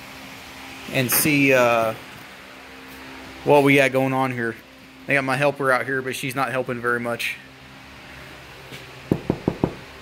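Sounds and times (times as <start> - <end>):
knocks on a car: 9.1 - 9.8.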